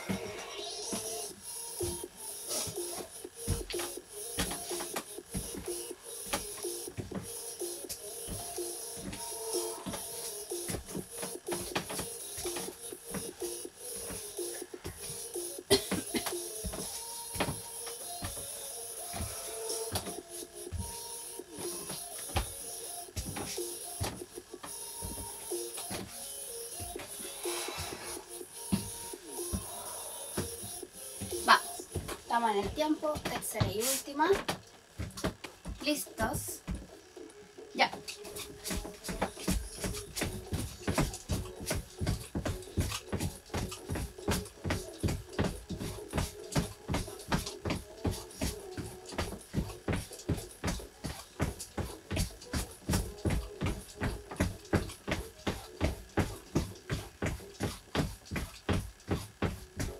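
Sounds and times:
jogging footfall thuds: 0.0s - 37.0s, 37.8s - 59.9s
background music: 0.0s - 57.7s.

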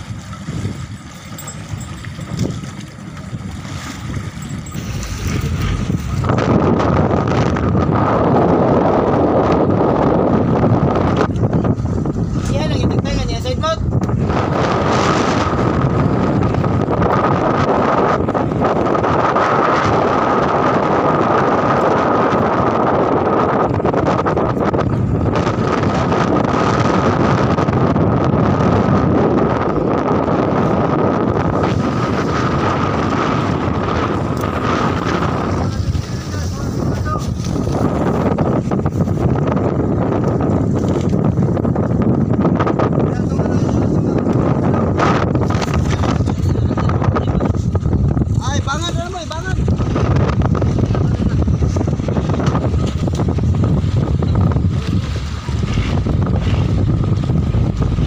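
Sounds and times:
boat engine running: 0.0s - 58.0s
wind buffeting microphone: 0.0s - 58.0s.

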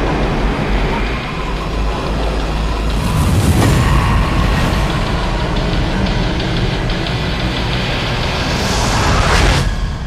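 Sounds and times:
low rumble: 0.0s - 10.0s
trailer music: 0.0s - 10.0s
rising whoosh: 2.8s - 9.6s.

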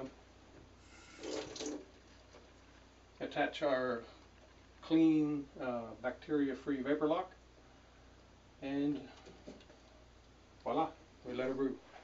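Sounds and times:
water splashing in a sink: 0.9s - 2.6s.

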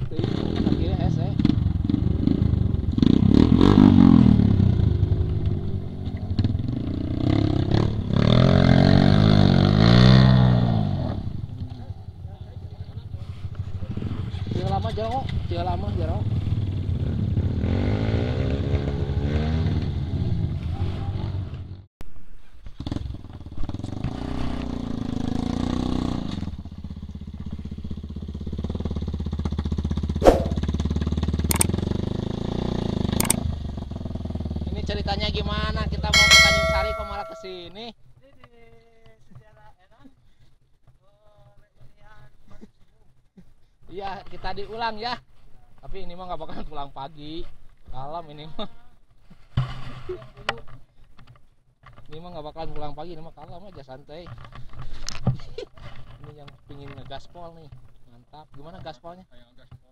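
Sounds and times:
dirt bike engines revving: 0.0s - 21.7s, 29.9s - 37.5s
short clicks: 31.5s - 31.7s, 33.2s - 33.4s
sharp knock: 36.2s - 37.5s.

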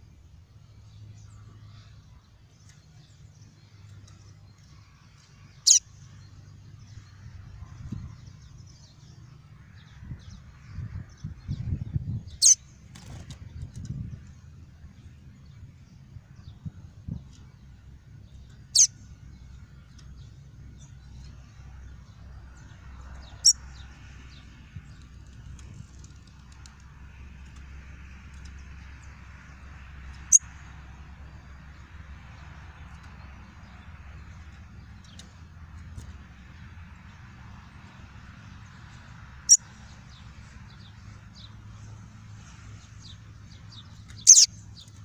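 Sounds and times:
bird high chirp: 5.5s - 9.2s, 11.2s - 12.7s, 18.4s - 19.0s, 23.2s - 23.9s, 42.9s - 45.0s.

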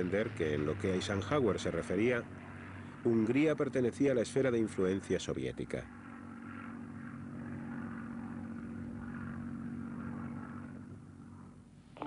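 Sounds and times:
propeller aircraft engine drone: 0.0s - 12.0s.

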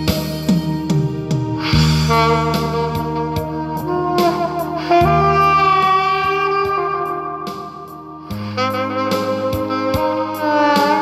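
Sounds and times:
backing accompaniment: 0.0s - 11.0s
alto saxophone long note: 1.6s - 11.0s.

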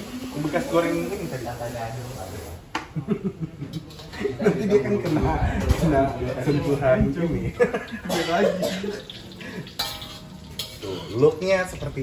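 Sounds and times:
eggs sizzling in hot oil: 0.0s - 2.6s, 7.7s - 12.0s
metal utensils scraping pan: 9.0s - 11.9s.

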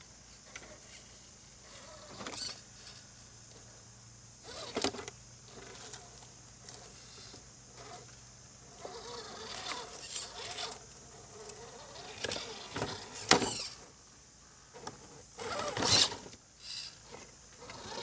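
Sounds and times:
rc car motor whining: 0.4s - 14.1s, 14.7s - 18.0s.

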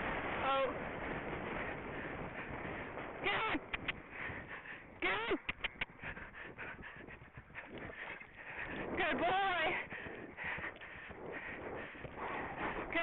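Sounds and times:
wind rush: 0.0s - 13.0s
tongue clicks: 3.6s - 4.0s, 5.3s - 6.1s.

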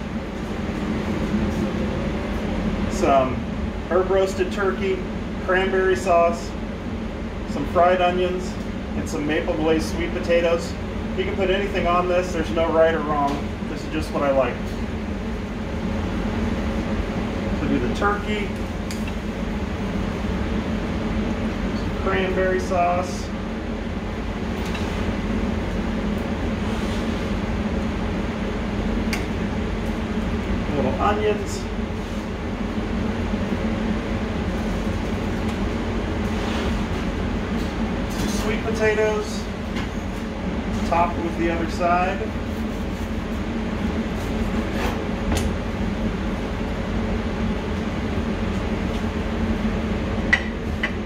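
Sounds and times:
air-handling fan hum: 0.0s - 51.0s.

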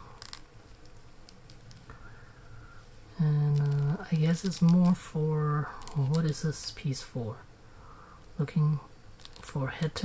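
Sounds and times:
fingers rustling on plastic figure: 0.0s - 1.9s, 3.2s - 6.6s, 9.2s - 10.0s.

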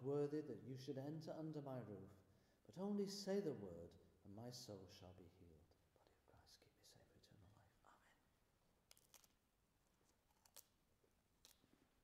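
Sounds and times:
faint whispered voice: 4.3s - 8.4s.

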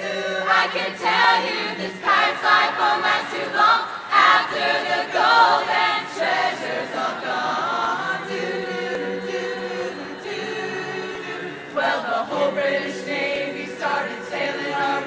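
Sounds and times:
choir singing a cappella: 0.0s - 15.0s.

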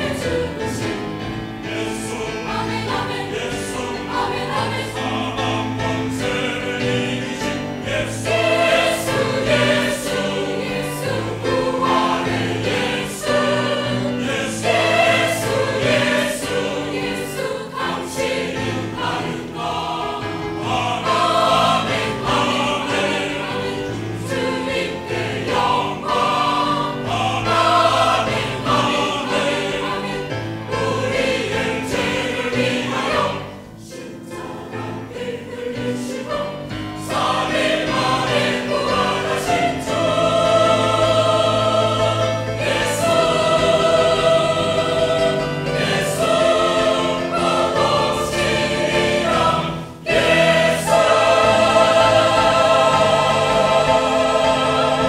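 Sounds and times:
mixed choir singing: 0.0s - 55.0s.

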